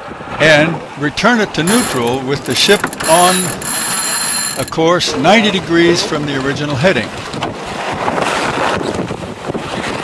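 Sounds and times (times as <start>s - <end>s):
wind buffeting microphone: 4.7s - 10.0s.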